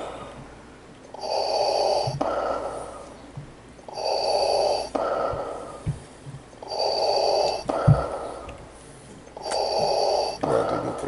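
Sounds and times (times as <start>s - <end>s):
man breathing heavily: 0.0s - 11.0s.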